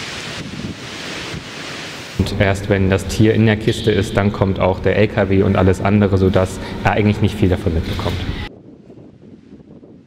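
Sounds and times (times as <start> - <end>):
wind on microphone: 0.0 - 2.4, 5.5 - 10.0.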